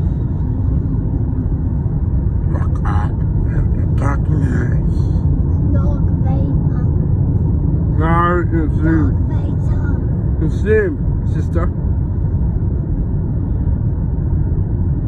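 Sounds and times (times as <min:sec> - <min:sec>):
car cabin road rumble: 0:00.0 - 0:15.0.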